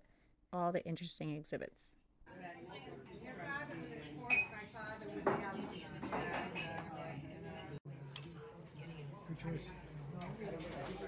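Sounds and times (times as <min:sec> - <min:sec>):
people talking: 0:00.6 - 0:02.0
cutlery and plates clinking: 0:05.3 - 0:07.1.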